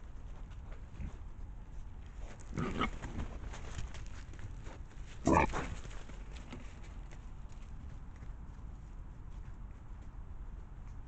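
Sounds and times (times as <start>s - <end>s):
wild boar grunting: 2.5s - 3.1s, 5.2s - 5.7s.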